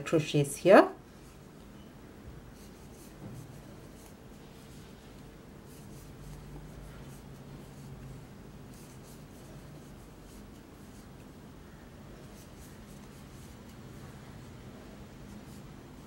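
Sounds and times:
low steady hum: 0.0 - 16.0.

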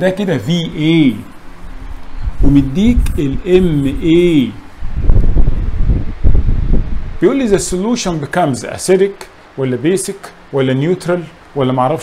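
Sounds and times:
low rumbling on microphone: 0.6 - 7.9.

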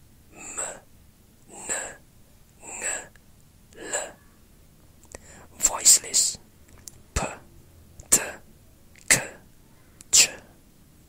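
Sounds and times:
person whispering: 0.4 - 0.9, 1.5 - 2.0, 2.6 - 3.2, 3.8 - 4.2, 5.1 - 6.4, 7.2 - 8.4, 10.0 - 10.6.

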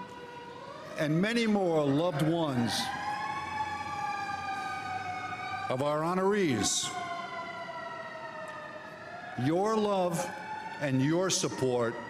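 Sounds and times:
emergency vehicle siren wailing: 0.0 - 12.0.

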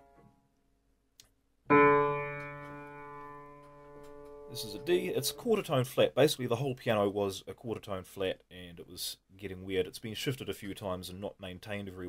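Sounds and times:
piano note ringing: 1.7 - 5.5.

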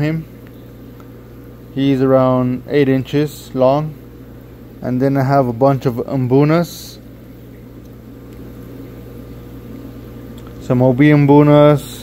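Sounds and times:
pond pump humming: 0.0 - 12.0.

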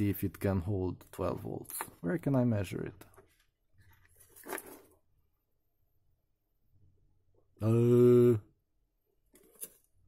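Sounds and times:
handling noise on a desk: 3.2 - 5.0.

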